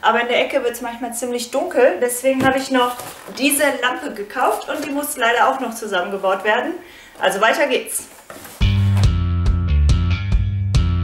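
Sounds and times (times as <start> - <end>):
music with bass and drum beat: 8.6 - 11.0.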